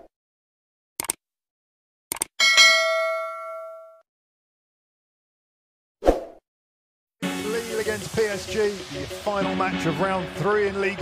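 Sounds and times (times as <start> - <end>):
notification bell ding: 2.4 - 4.0.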